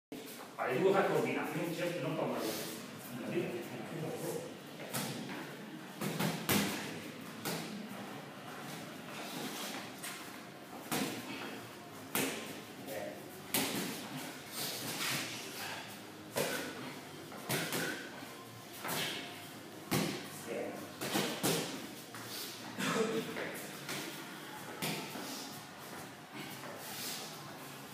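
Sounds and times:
boxing gloves thudding: 17.4 - 18.1, 19.9 - 20.3, 21.0 - 21.8.

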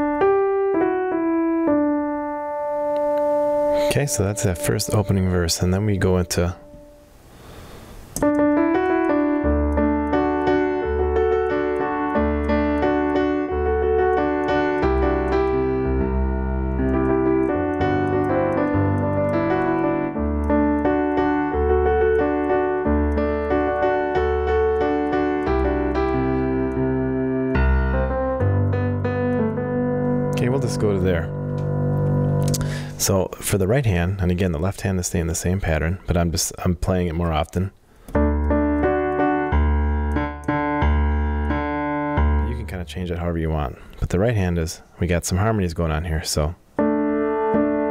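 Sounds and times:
piano playing: 0.0 - 35.3, 36.9 - 43.9, 45.8 - 47.9.

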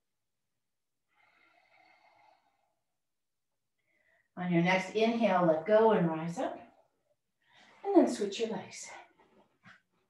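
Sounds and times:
faint breathing: 1.0 - 2.9.

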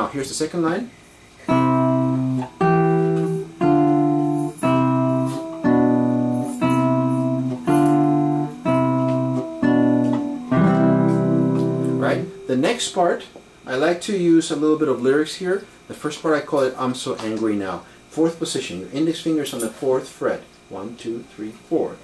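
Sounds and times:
classical guitar chords: 1.4 - 13.1.

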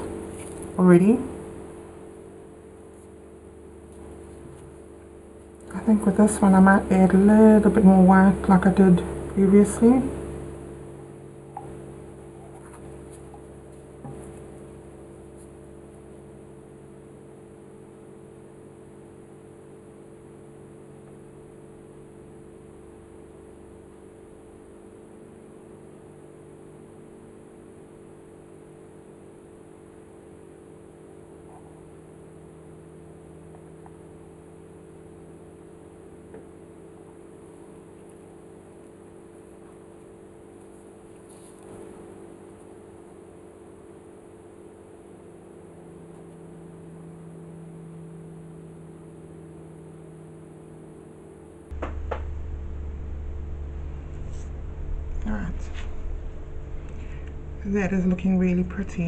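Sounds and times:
low electrical hum: 0.0 - 59.0
room hiss: 8.4 - 58.8.

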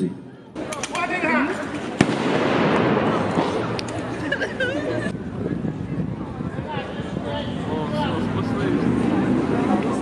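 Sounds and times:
sharp gunshot bang: 2.0 - 3.7.

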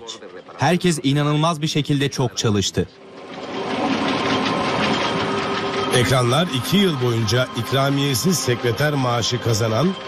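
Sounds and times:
factory machinery whirring: 0.0 - 10.0
rapid machine clatter: 0.2 - 10.0.

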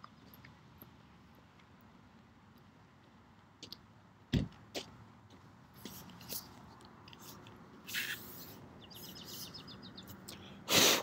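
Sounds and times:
birds chirping: 7.2 - 10.6.

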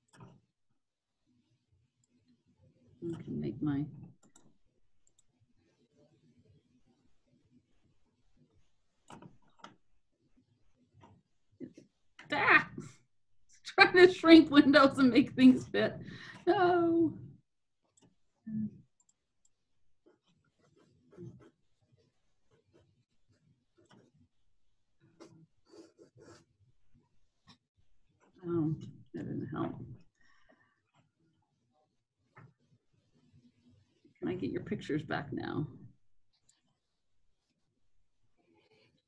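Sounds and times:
computer mouse clicks: 0.0 - 0.4, 3.1 - 5.3, 9.0 - 9.8.

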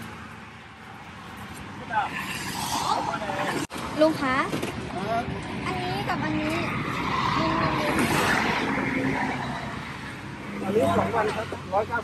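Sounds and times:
vehicle passing on road: 0.0 - 12.0
people talking: 2.9 - 8.5, 10.6 - 12.0.

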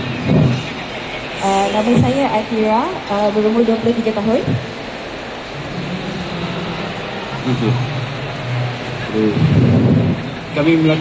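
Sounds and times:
busy indoor hall noise: 0.0 - 11.0
steady low hum: 0.0 - 11.0.

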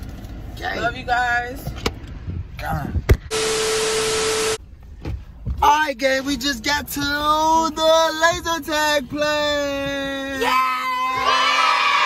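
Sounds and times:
steady hum tone: 3.1 - 4.7
burst of static hiss: 3.3 - 4.6.

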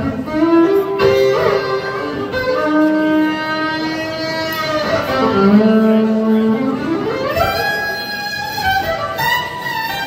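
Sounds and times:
electric violin bowing chords: 0.0 - 10.0.

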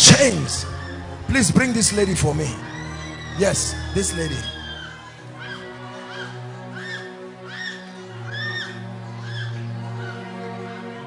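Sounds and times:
sustained keyboard chords: 0.0 - 4.7.

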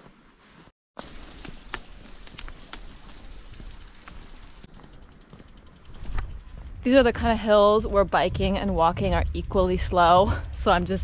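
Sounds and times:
bicycle tyres hissing on wet road: 0.4 - 6.8
low rumble: 5.6 - 11.0.

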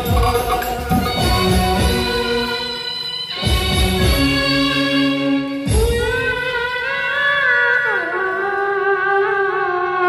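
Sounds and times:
heavy drums: 0.0 - 6.8.

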